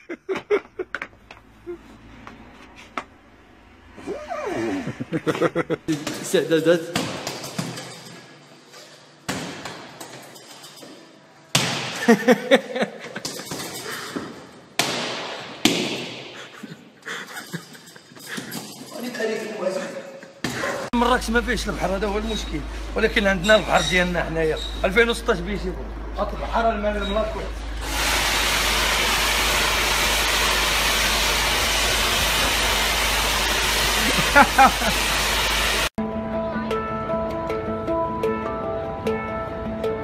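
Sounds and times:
water spray hissing: 27.8s - 35.9s.

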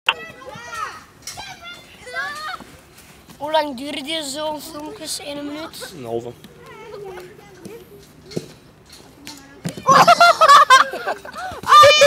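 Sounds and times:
children calling and chattering: 0.1s - 12.0s.

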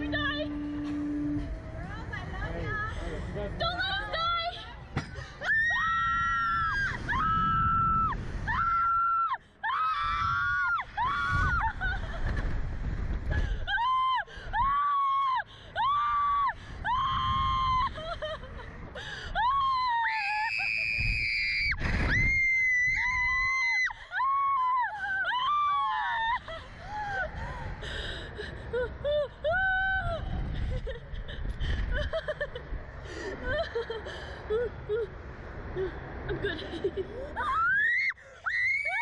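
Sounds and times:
low electric hum: 0.0s - 39.0s
girls laughing and squealing: 9.7s - 12.4s, 35.8s - 39.0s.

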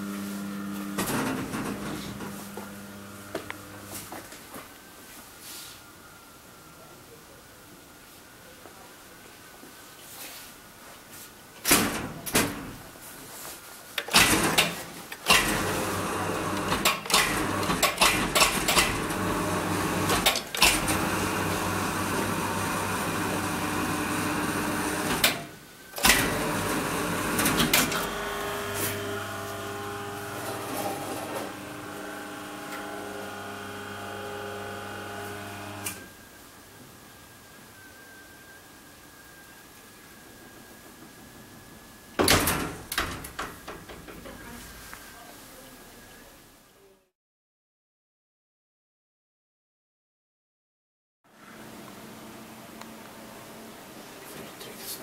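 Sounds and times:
platform lift motor humming: 0.0s - 3.9s, 18.7s - 25.4s, 26.0s - 36.0s.

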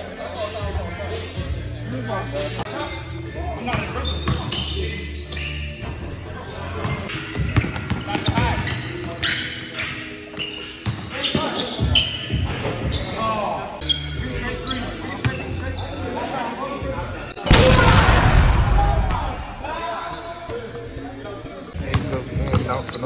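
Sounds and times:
players' voices: 0.0s - 23.0s
shoe squeaks: 2.7s - 16.2s, 19.8s - 21.0s, 22.0s - 23.0s.

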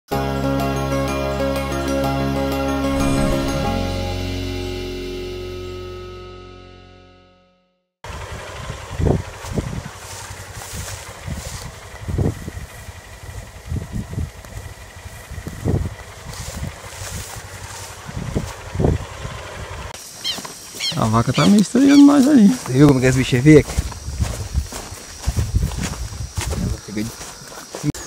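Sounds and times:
music jingle: 2.8s - 7.6s
low thumps against microphone: 3.0s - 4.2s
steady outdoor hiss: 9.3s - 28.0s.

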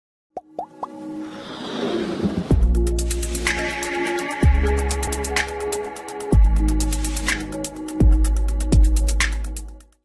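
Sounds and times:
intro music: 2.2s - 9.8s.

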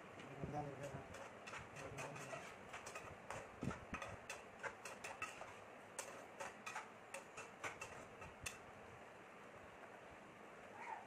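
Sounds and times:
metal spatula scraping frying pan: 1.0s - 8.6s.

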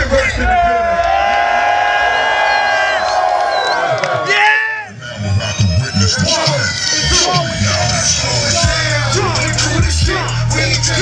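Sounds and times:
crowd cheering: 0.0s - 5.0s.

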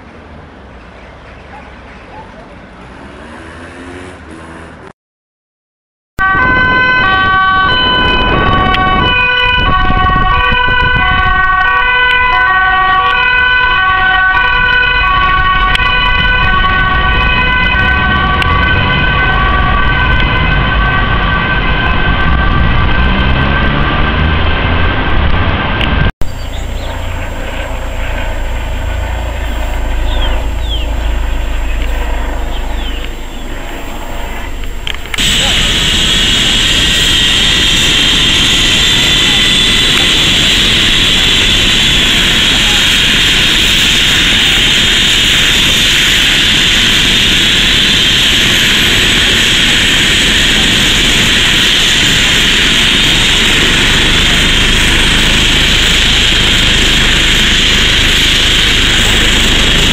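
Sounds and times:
two-tone police siren: 6.2s - 25.0s, 26.2s - 59.9s
low rumble: 16.4s - 59.9s.

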